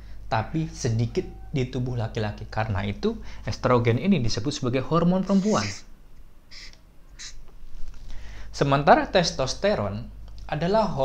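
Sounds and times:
marker squeaking on paper: 5.3 - 5.9, 6.5 - 7.4.

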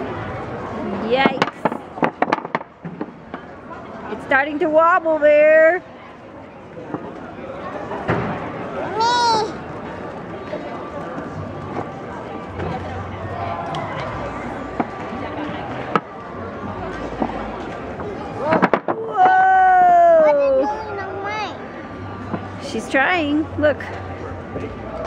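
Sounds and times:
child crying out: 8.9 - 9.6.

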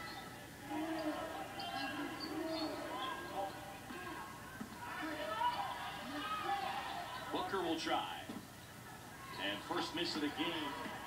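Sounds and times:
indistinct voices from tv speaker: 0.0 - 11.0.

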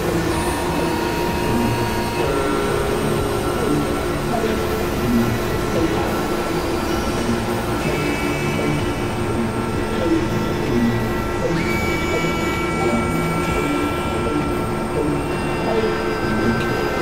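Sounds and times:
experimental synthesizer drone music: 0.0 - 17.0.

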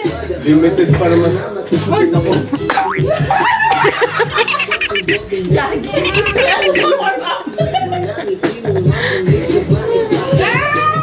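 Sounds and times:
music playing: 1.8 - 7.3
people laughing and talking: 1.8 - 9.6.

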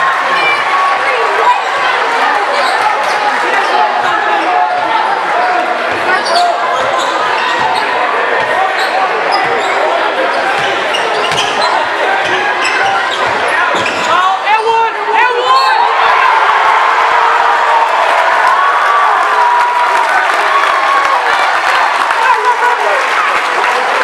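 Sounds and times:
crowd chatter: 0.0 - 24.0
sneaker squeaks: 5.5 - 14.2.

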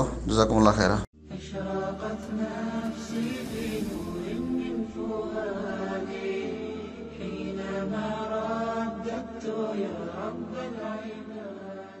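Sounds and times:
person chanting: 1.3 - 12.0
steady low hum: 2.2 - 7.4.

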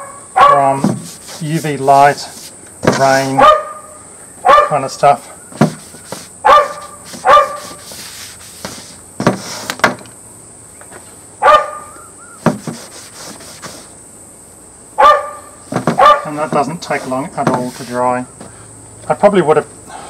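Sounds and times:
dog barking: 0.0 - 0.8, 3.4 - 4.9, 6.4 - 7.8, 11.4 - 12.0, 15.0 - 16.4.

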